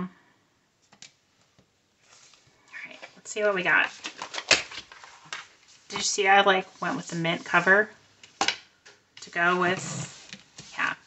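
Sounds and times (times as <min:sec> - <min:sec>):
planner pages flipping: 0:02.0 - 0:06.1.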